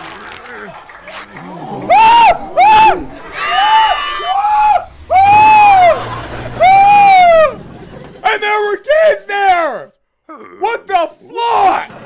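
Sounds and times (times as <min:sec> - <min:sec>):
man yelling loudly: 0:08.2 - 0:09.9, 0:10.6 - 0:11.9.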